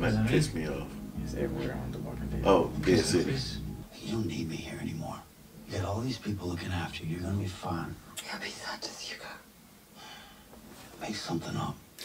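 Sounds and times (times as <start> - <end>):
person whispering: 8.2 - 9.4.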